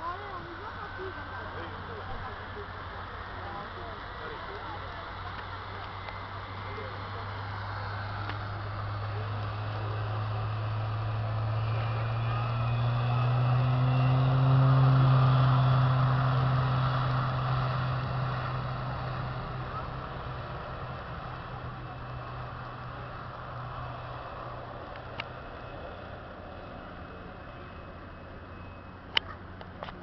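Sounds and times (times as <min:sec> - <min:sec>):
faint high whine: 0:00.0 - 0:30.0
propeller plane taking off: 0:00.0 - 0:30.0.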